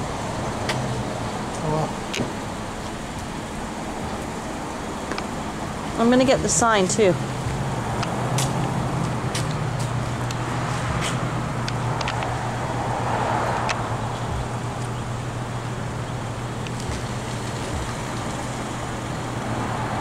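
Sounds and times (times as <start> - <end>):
low mechanical hum: 0.0 - 20.0
urban street noise: 0.0 - 20.0.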